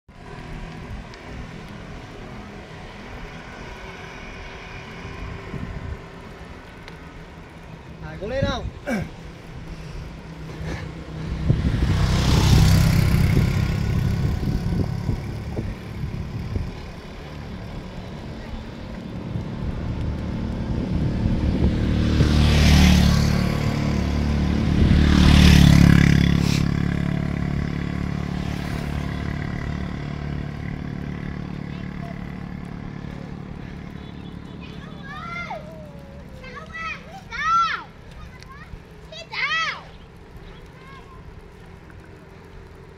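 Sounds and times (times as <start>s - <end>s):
wind buffeting microphone: 4.8s - 6.4s, 8.2s - 28.2s.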